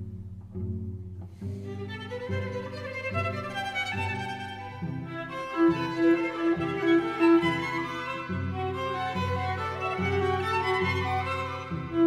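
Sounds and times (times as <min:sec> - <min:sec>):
violin and cello music: 0:01.2 - 0:12.0.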